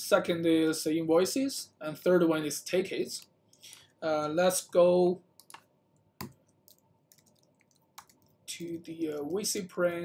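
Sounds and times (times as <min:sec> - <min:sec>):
computer keyboard keystrokes: 0:05.4 - 0:05.6, 0:06.2 - 0:08.3.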